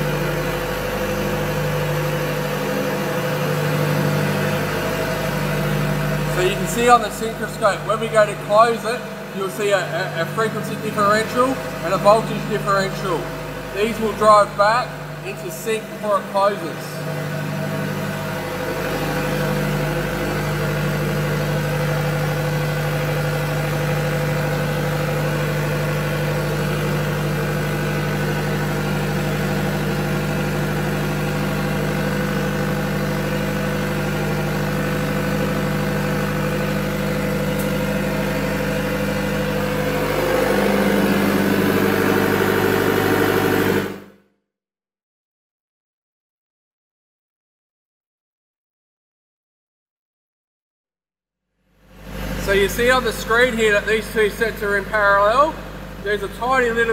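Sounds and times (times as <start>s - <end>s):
diesel generators running: 0.0s - 44.2s, 51.8s - 56.9s.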